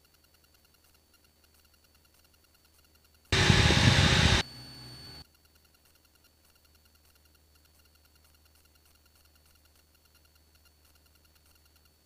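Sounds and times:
faint high whine: 0:03.3 - 0:05.3
static hiss over headset: 0:03.4 - 0:05.2.

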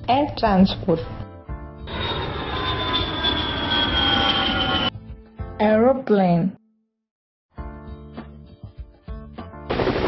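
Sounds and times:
jet engine whine: 0:01.8 - 0:04.9.

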